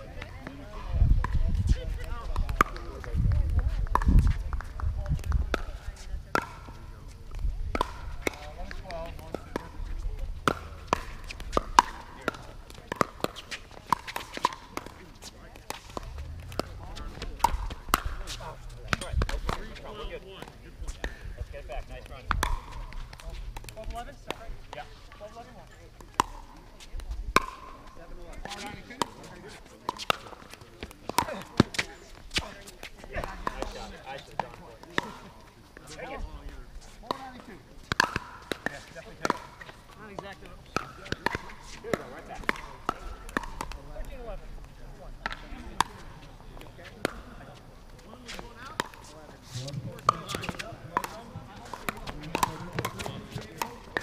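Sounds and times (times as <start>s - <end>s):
ball bouncing on hard court: 2.0s - 21.2s, 21.8s - 24.5s, 26.0s - 26.6s, 27.4s - 29.3s, 29.9s - 32.5s, 37.0s - 47.3s, 48.3s - 54.0s
paddles striking plastic ball: 7.3s - 9.8s, 10.4s - 15.0s, 21.9s - 24.4s, 37.8s - 46.0s, 50.0s - 54.0s.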